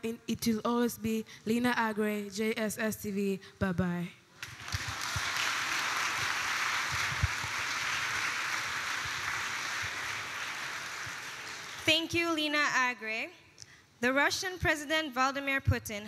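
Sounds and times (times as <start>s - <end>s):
audience applauding: 4.4s - 11.9s.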